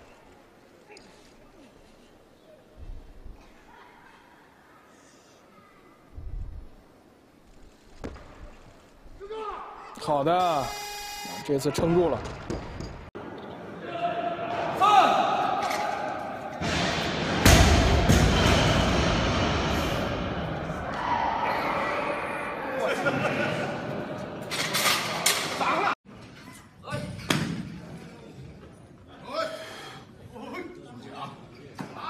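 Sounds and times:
voices in a large hall: 0:00.0 - 0:06.5, 0:20.6 - 0:32.0.

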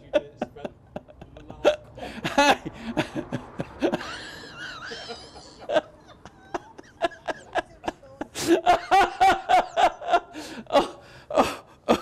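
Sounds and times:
man laughing: 0:00.0 - 0:12.0.

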